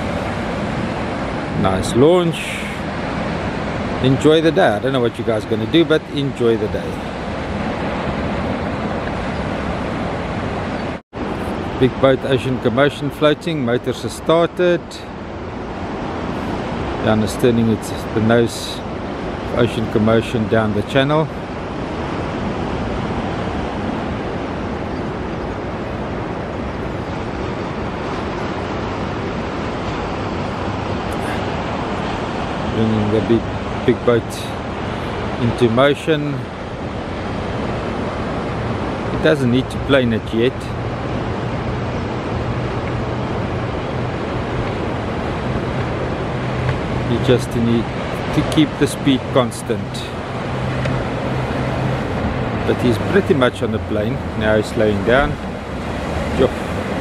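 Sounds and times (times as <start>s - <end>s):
hiss of wind and water: 0.0s - 57.0s
outboard motors running: 0.0s - 57.0s.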